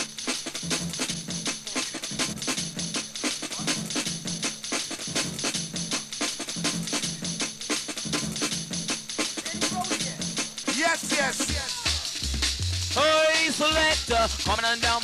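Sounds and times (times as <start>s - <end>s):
fast breakbeat drums: 0.0s - 15.0s.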